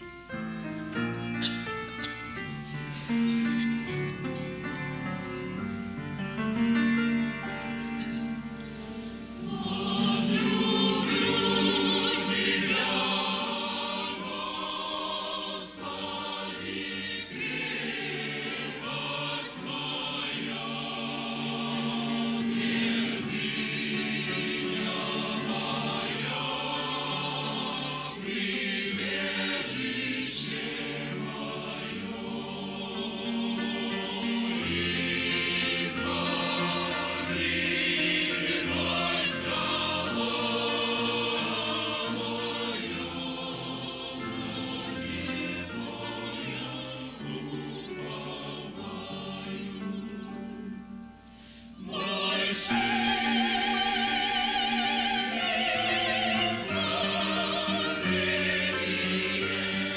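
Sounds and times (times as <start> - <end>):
choir singing a hymn: 0.0 - 59.9
grand piano accompaniment: 0.0 - 59.9.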